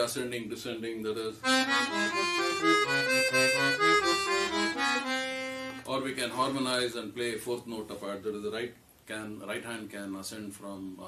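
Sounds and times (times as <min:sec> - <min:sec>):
accordion playing scale runs: 0:01.4 - 0:05.9.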